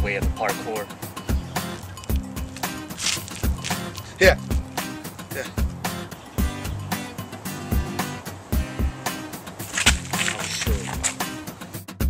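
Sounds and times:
music with drum beat and bass: 0.0 - 12.0.

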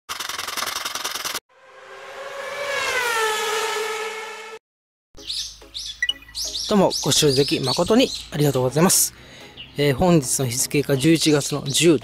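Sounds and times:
fast buzzing rattle: 0.1 - 1.4
bird chirps: 5.2 - 8.7, 9.4 - 9.9.

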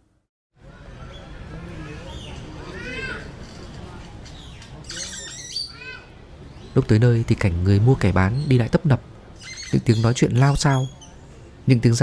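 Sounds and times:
murmur of voices: 0.6 - 12.0
birds squawking: 4.4 - 6.8, 8.2 - 11.2.

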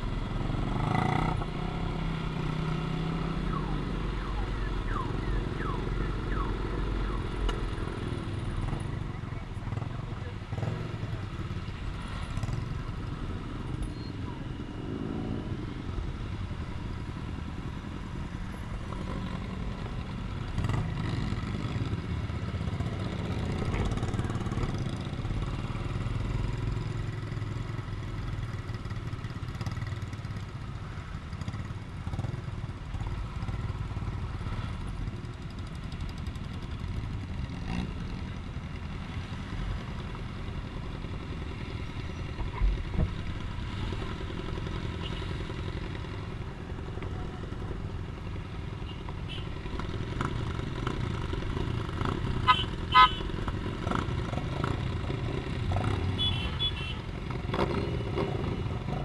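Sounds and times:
motorcycle engines running: 0.0 - 59.0.

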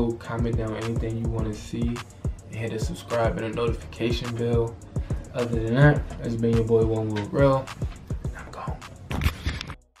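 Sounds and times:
music with drum beat: 0.0 - 9.3.

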